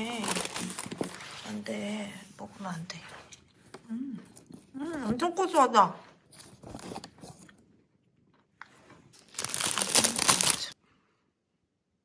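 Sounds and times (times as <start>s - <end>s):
cellophane bag crinkling: 0.0s - 1.3s, 9.2s - 10.8s.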